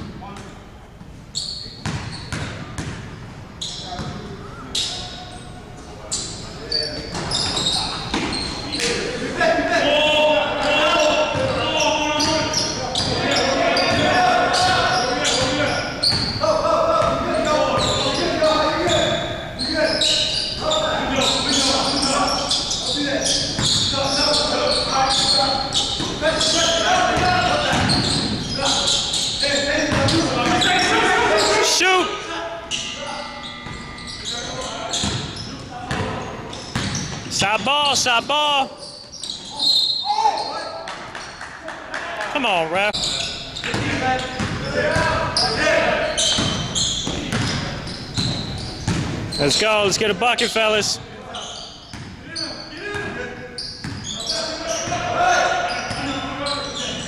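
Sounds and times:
basketball bouncing on wooden floor: 1.8s - 3.0s, 48.2s - 49.2s
players' voices calling: 3.6s - 40.9s, 41.9s - 57.0s.

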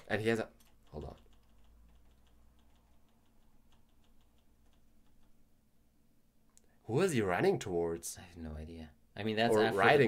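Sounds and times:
computer keys tapping: 0.0s - 5.4s.

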